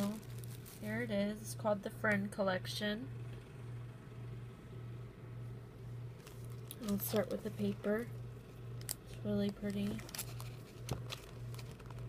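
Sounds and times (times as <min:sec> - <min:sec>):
low pulsing hum: 0:00.0 - 0:12.0.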